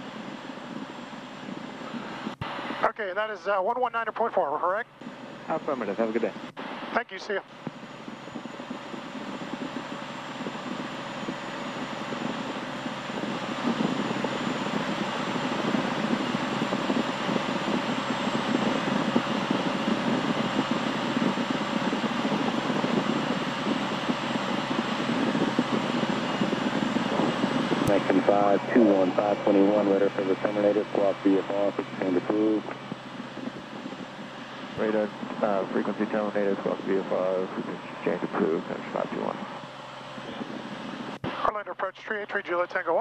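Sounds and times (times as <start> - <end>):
propeller plane engine droning: 0.0 - 43.0.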